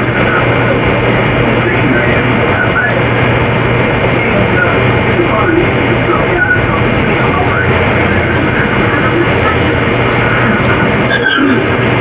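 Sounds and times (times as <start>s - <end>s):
dense noise wash: 0.0s - 12.0s
low hum: 0.0s - 12.0s.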